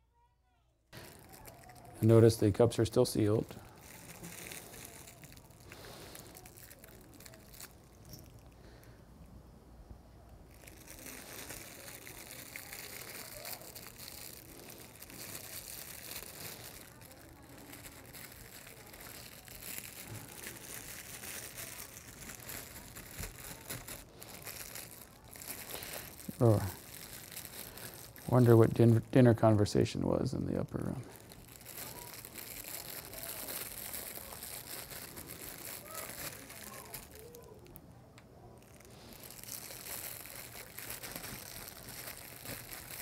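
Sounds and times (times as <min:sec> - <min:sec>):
plastic wrapping crinkling: 0:00.9 - 0:09.0, 0:10.2 - 0:43.0.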